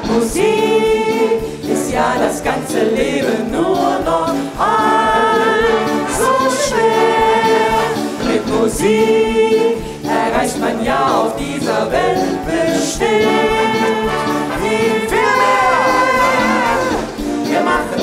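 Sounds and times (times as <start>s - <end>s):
group singing held chords: 0.0s - 18.0s.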